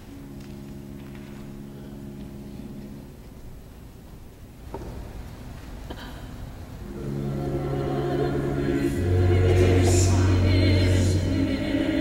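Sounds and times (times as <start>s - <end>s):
choir singing sustained chords: 6.8s - 12.0s.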